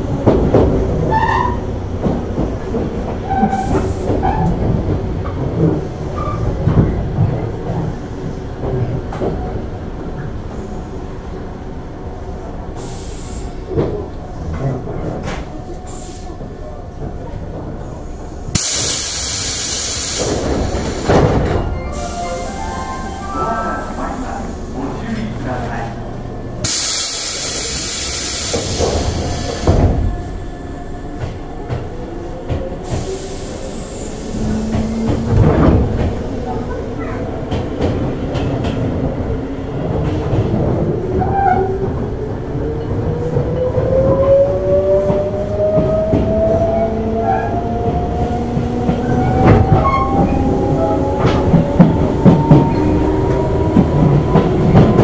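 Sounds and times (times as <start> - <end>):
air hiss: 12.8 - 13.6, 18.5 - 21.2, 26.6 - 29.6
rail-joint clacks: 18.5 - 30.4, 31.1 - 42.1.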